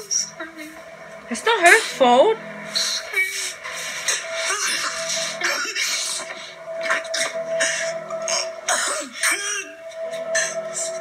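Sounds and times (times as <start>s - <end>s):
sustained music score: 0.0s - 11.0s.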